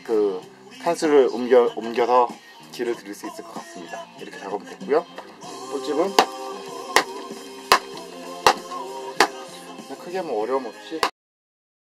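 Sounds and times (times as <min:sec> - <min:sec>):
background music: 0:00.0 - 0:11.1.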